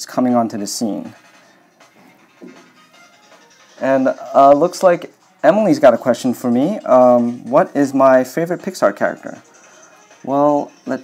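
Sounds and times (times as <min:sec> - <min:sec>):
soft background music: 0:00.0 - 0:11.0
stylus scratching on tablet screen: 0:08.6 - 0:11.0.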